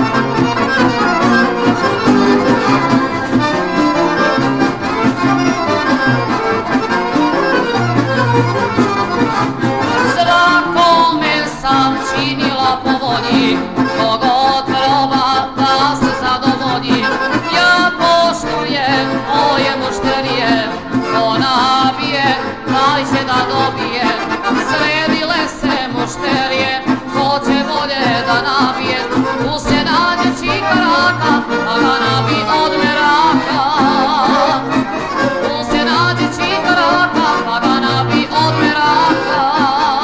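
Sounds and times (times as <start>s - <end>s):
folk song with accordion: 0.0s - 40.0s
woman singing with vibrato: 9.7s - 40.0s.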